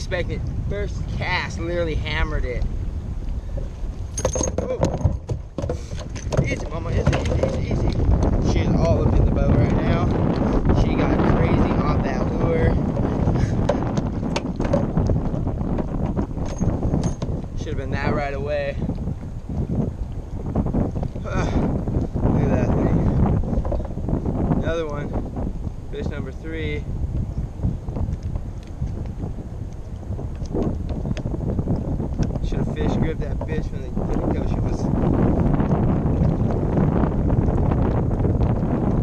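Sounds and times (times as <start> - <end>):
wind buffeting microphone: 0.0 - 39.0
fish thrashing in plastic kayak: 3.6 - 9.2.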